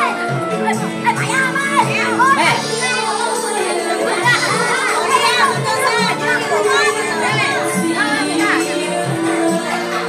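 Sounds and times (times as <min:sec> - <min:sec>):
background music with held tones: 0:00.0 - 0:10.0
children calling and chattering: 0:00.0 - 0:10.0.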